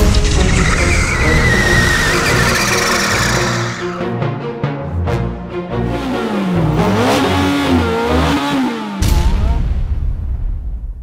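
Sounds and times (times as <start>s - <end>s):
theme music: 0.0s - 10.5s
car tyres squealing: 0.2s - 4.0s.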